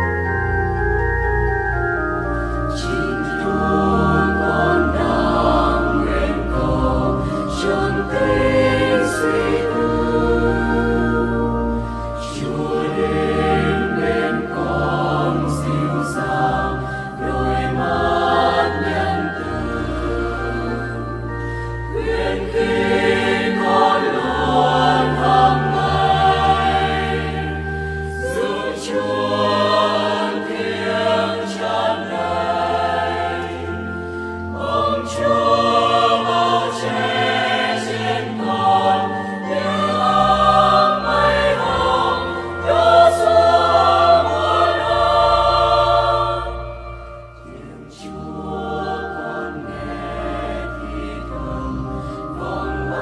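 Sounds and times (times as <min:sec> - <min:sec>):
sustained low accompaniment notes: 0:00.0 - 0:53.0
choir singing a hymn: 0:02.4 - 0:53.0.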